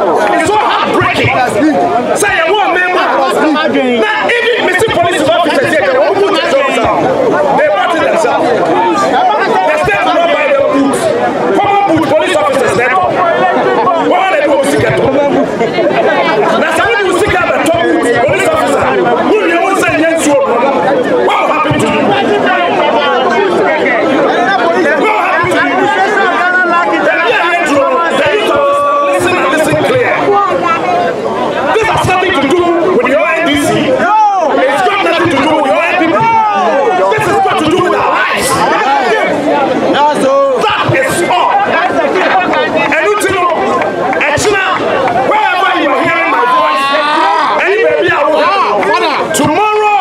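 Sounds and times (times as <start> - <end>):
man talking into microphones: 0.0 - 50.0
voices chattering: 0.0 - 50.0.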